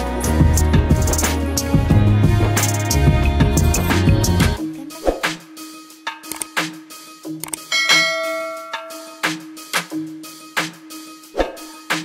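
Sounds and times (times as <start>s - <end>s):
background music with steady beat: 0.0s - 12.0s
quick clicks: 6.3s - 6.6s, 7.4s - 7.7s
bright bell ding: 7.7s - 9.4s.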